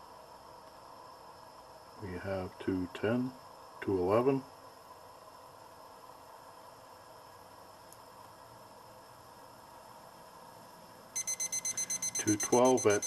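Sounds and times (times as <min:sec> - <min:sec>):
faint steady hiss: 0:00.0 - 0:13.0
thermometer beeping rapidly: 0:11.2 - 0:13.0.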